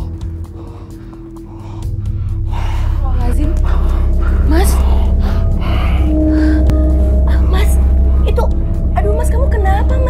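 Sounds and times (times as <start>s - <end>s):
background music with low drone: 0.0s - 10.0s.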